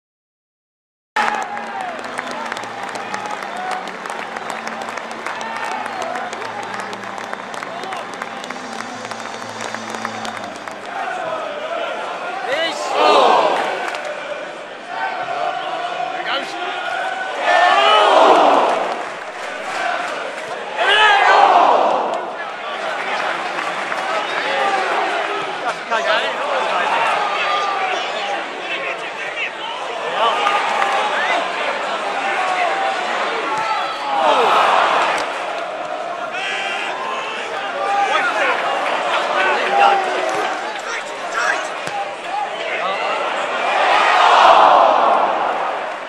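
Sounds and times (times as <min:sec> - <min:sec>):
stadium crowd shouting and chanting: 0:01.2 - 0:46.0.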